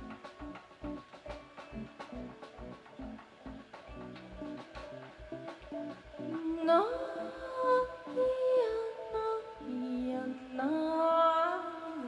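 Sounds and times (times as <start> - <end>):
low drum beat: 0.0 - 6.7
woman singing: 6.2 - 12.0.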